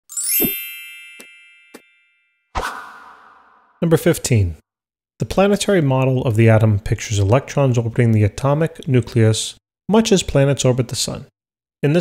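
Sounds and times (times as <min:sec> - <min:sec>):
bright chime hit: 0:00.1 - 0:02.4.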